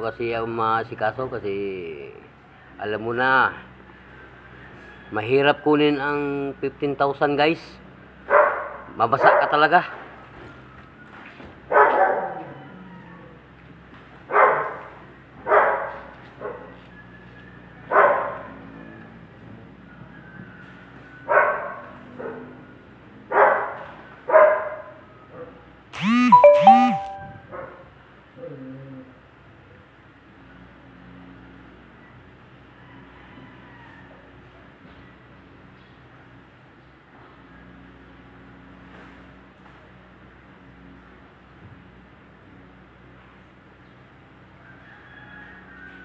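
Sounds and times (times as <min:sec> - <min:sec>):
dog barking: 0:08.3 - 0:09.6, 0:11.7 - 0:12.7, 0:14.3 - 0:16.8, 0:17.9 - 0:18.6, 0:21.3 - 0:22.6, 0:23.3 - 0:25.6
high-pitched double cry: 0:26.0 - 0:27.4.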